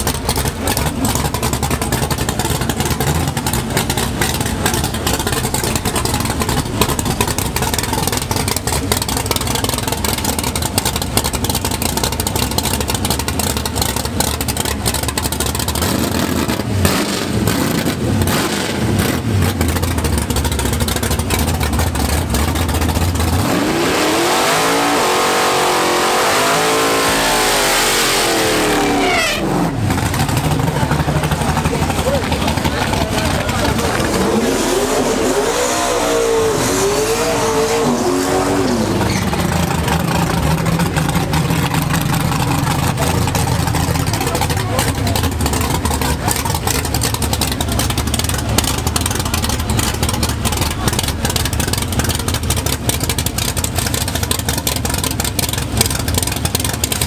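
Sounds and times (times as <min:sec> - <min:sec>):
drag car engine revving: 0:00.0 - 0:57.0.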